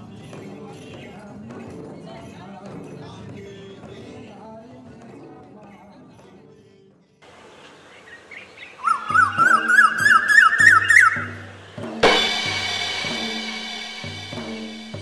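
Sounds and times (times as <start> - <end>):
quick bird-like chirps: 8.0 - 11.4
ringing crash: 12.0 - 15.0.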